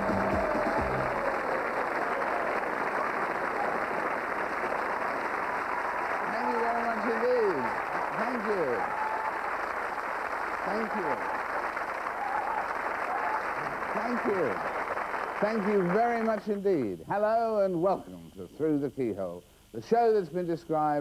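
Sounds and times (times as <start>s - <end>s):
theme music: 0.0s - 1.3s
audience applauding: 0.0s - 16.5s.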